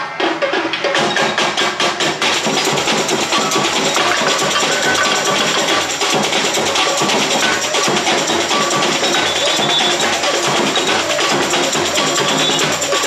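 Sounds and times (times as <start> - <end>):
samba drumming: 0.0 - 13.0.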